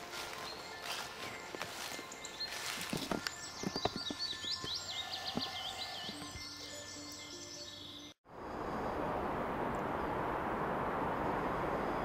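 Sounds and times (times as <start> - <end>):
footsteps on twigs and leaves: 0.0 - 6.4.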